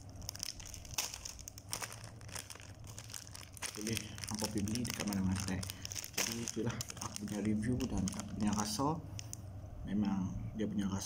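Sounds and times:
plastic wrappers crinkling: 0.0 - 9.4.

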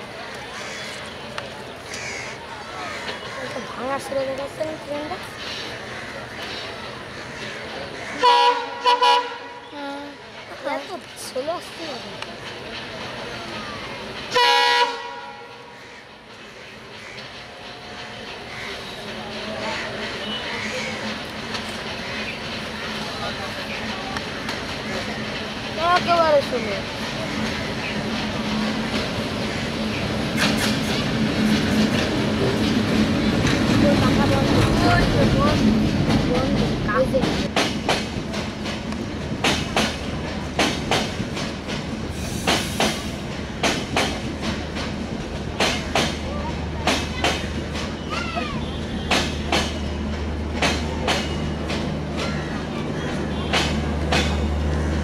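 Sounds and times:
people's voices: 0.0 - 14.7, 15.6 - 55.0
diesel locomotive engine hum: 0.0 - 55.0
train rumble: 0.0 - 55.0.

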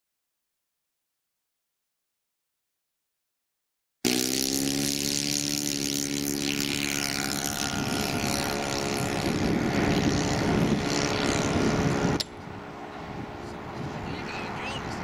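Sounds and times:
model plane engine and propeller: 4.1 - 15.0.

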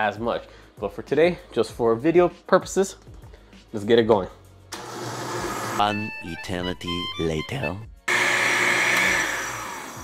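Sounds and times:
blender motor running: 4.8 - 5.8, 8.1 - 10.0.

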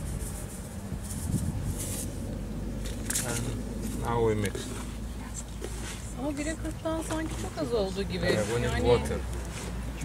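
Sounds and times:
gritty rustles of soil in basin: 0.0 - 10.0
low outdoor rumble: 0.0 - 10.0.

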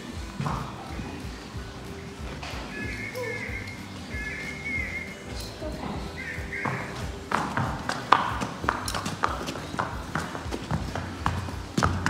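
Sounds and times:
hooves clip-clopping on hard floor: 0.0 - 12.0.

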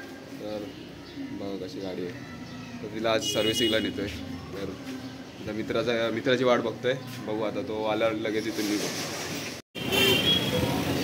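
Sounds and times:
road traffic: 0.0 - 11.0.

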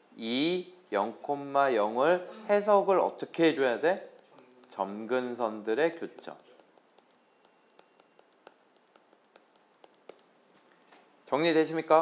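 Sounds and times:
stylus tapping on tablet screen: 4.0 - 10.8.

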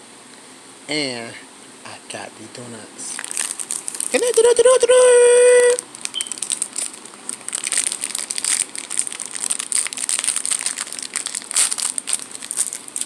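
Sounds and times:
plastic wrapper crinkling: 3.1 - 13.0.

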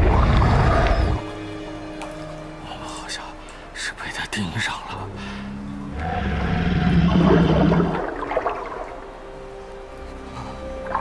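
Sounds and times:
crocodile growl: 5.9 - 8.1
churning floodwater: 6.2 - 11.0.

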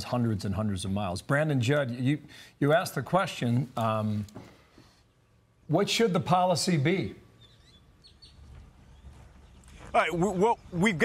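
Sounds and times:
man speaking: 0.0 - 4.3, 5.7 - 7.2, 9.9 - 11.0.

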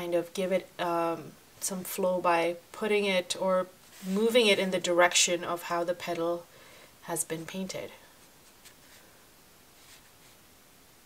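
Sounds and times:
brush swishing across paper: 3.8 - 4.4, 8.1 - 10.5.

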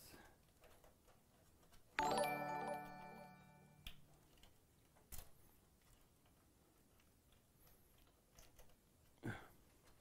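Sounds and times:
electronic alert chime: 2.0 - 3.8.

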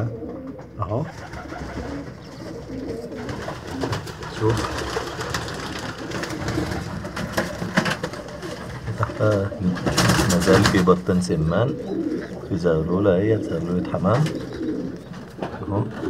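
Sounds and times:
pigeon cooing: 0.0 - 16.0.

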